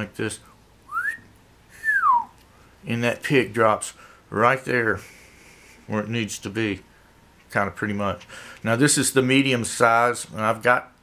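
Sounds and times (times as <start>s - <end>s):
man whistling: 0.9s - 2.4s.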